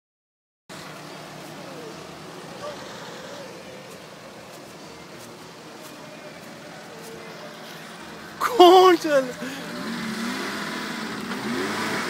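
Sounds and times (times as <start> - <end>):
faint voices: 0.7 - 10.0
engine idling: 0.7 - 12.0.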